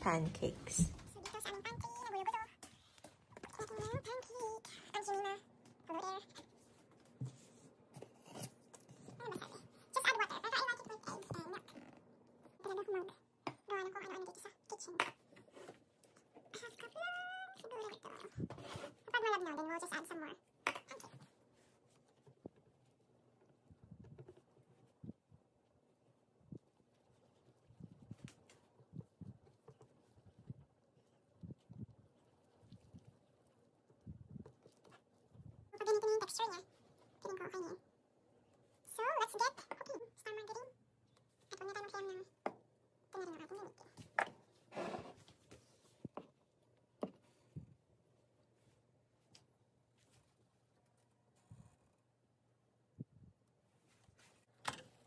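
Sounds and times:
person speaking: 0.0 - 2.5
cardboard box rustling scrape: 44.7 - 45.3.

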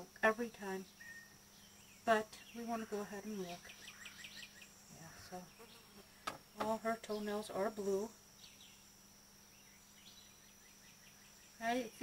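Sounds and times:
faint chirps: 0.6 - 12.0.

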